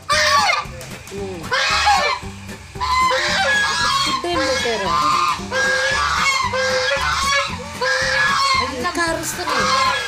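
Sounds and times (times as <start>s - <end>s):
geese honking: 0.0s - 0.8s, 1.4s - 10.0s.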